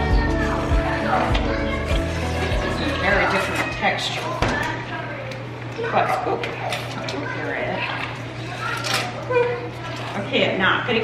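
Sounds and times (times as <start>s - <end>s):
background music: 0.0s - 3.6s.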